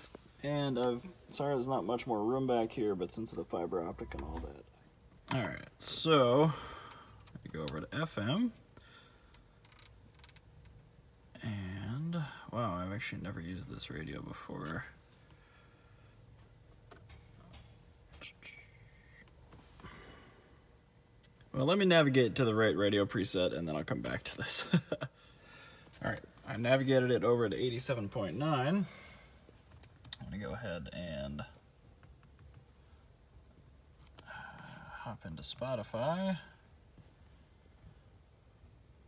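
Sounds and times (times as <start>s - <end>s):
faint steady sound: 0.0s - 39.0s.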